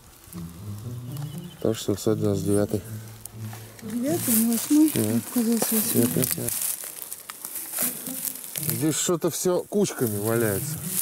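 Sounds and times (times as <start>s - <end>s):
rustling handling noise: 0.0s - 11.0s
man reading digits: 0.5s - 6.6s.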